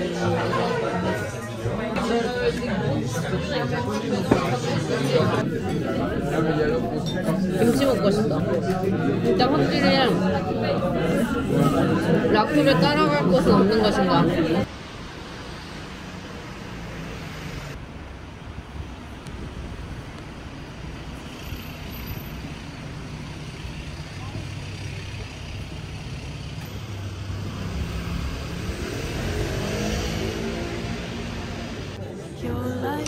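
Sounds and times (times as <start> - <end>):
people's voices: 0.0 - 14.7, 23.0 - 26.4
cars going by: 0.0 - 32.1.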